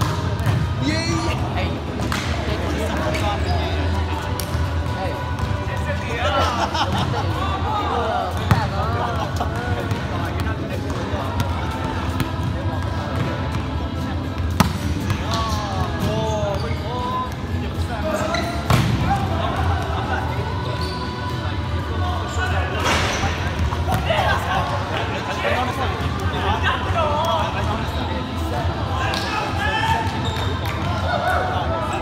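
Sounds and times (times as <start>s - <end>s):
players' voices echoing: 0.0s - 32.0s.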